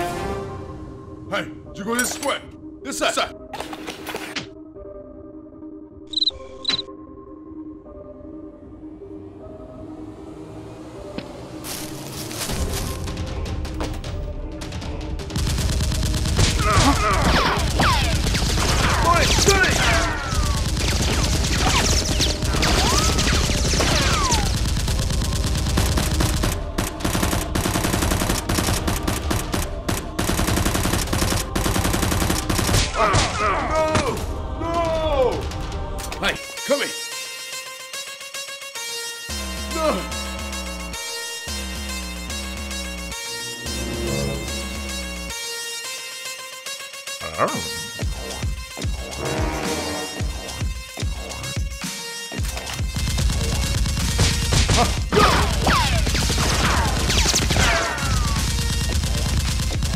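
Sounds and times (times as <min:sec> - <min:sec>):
background music: 0:00.0 - 0:59.9
automatic gunfire: 0:15.4 - 0:32.9, 0:52.9 - 0:59.9.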